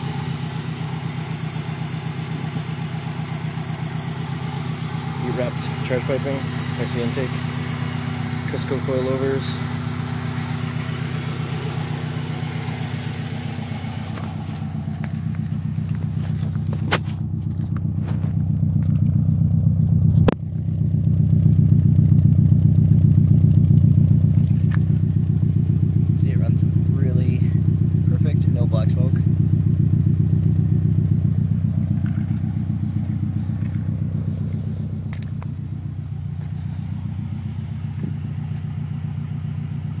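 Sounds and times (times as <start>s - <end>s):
car engine idling: 0.0s - 40.0s.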